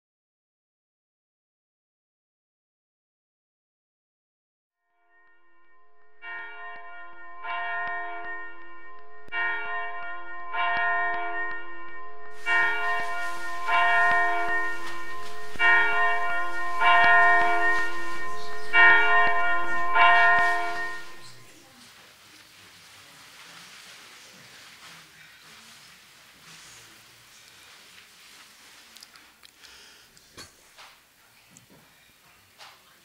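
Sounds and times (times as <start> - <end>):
church bells ringing: 5.1 - 21.7
steady hiss: 21.6 - 33.0.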